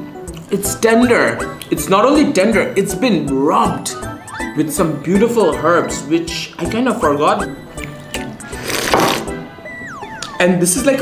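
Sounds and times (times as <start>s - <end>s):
background music: 0.0s - 11.0s
person slurping noodles: 8.4s - 9.3s.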